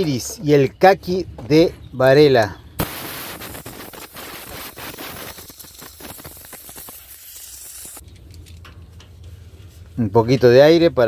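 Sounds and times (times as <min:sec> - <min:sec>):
compressed air blow gun hissing: 0:02.8 - 0:08.0.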